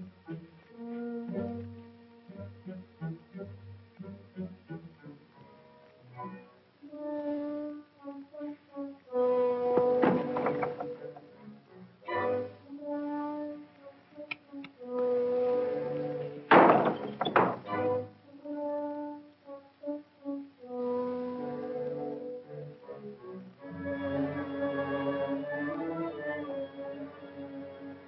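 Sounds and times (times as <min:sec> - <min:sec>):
orchestral brass and horns: 0:04.5 - 0:28.0.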